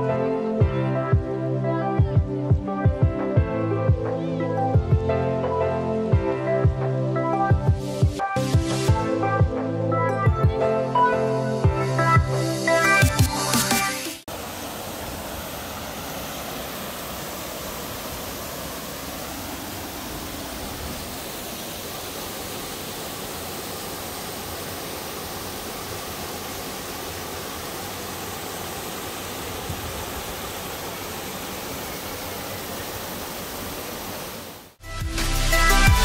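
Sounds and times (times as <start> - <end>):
waterfall rushing: 12.7 - 34.8.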